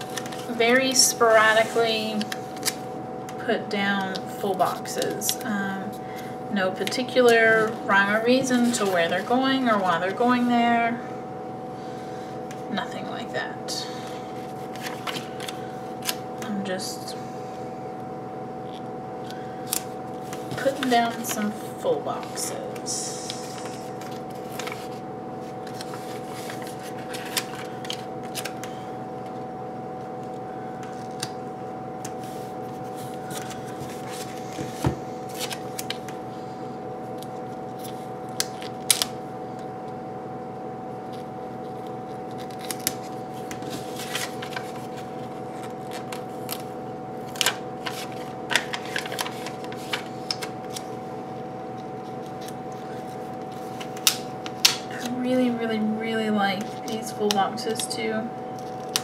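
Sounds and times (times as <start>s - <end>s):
steady hum: 0.0s - 59.0s
paper rustles and crinkles: 14.3s - 16.2s, 23.3s - 28.7s, 32.1s - 36.1s, 41.1s - 50.9s.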